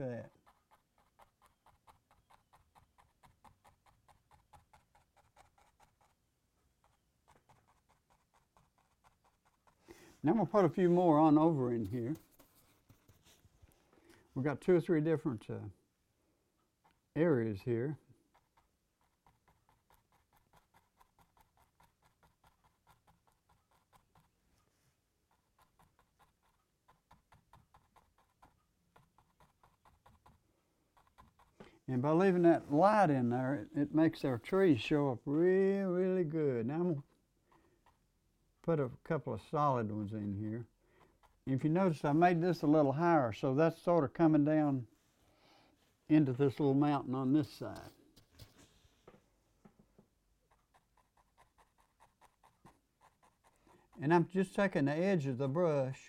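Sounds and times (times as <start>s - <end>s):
paintbrush scratching on canvas: 0.0s - 13.9s, 16.8s - 35.0s, 41.0s - 42.9s, 46.5s - 49.0s, 50.4s - 55.2s.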